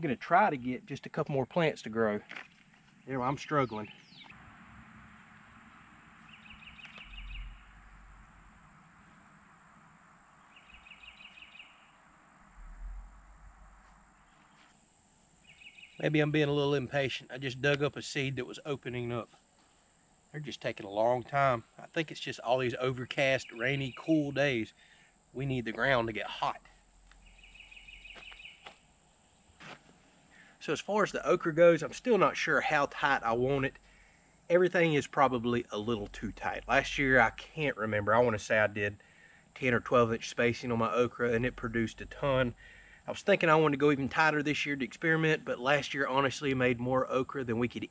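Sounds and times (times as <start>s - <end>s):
faint outdoor background noise: 0.0s - 47.9s
insect trill: 2.4s - 29.6s, 30.3s - 47.9s
brief low rumbles: 4.2s - 14.6s.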